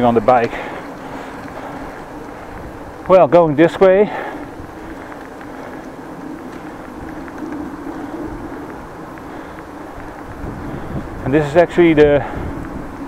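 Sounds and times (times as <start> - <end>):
bicycle rolling on asphalt: 0.0 - 13.0
light ticks: 4.4 - 10.4.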